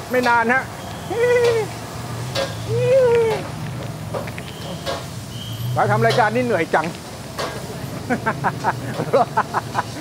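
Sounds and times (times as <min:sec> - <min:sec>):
wok burner hum: 0:00.0 - 0:10.0
person hooting calls: 0:01.1 - 0:01.8, 0:02.6 - 0:03.5.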